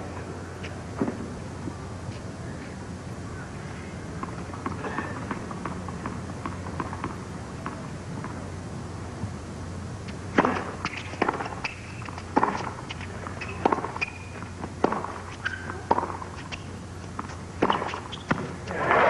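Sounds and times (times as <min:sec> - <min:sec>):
faint crowd murmur: 0:00.0 - 0:05.6
tennis ball hit by racquets: 0:10.3 - 0:19.0
shoe squeaks on hard court: 0:10.9 - 0:14.4, 0:15.3 - 0:15.8, 0:17.7 - 0:18.5.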